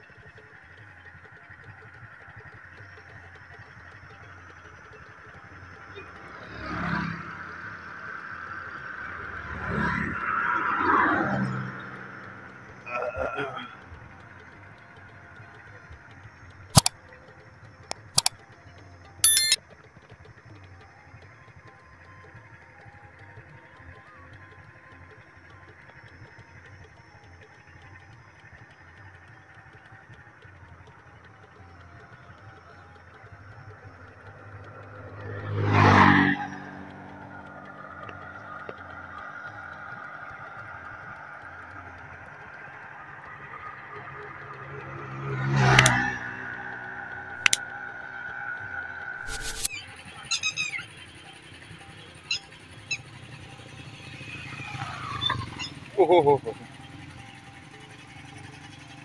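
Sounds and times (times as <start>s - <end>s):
vehicles passing by: 0.0s - 59.0s.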